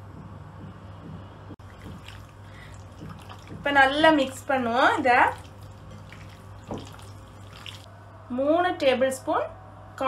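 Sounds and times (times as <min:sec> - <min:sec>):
steady low hum: 0:00.0 - 0:10.0
wet squelching of marinated meat: 0:01.6 - 0:07.9.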